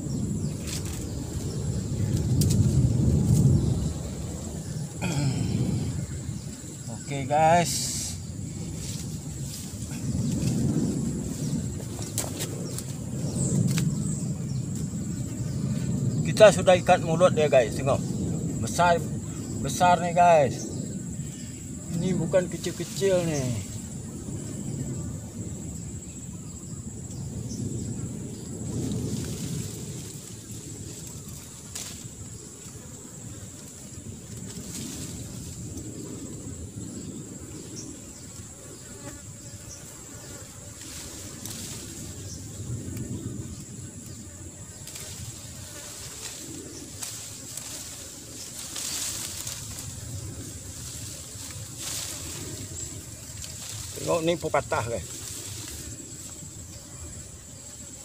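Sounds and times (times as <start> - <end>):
high-pitched insect buzz: 0.0 - 16.2, 18.1 - 58.0
rustling and handling noise: 44.8 - 50.1.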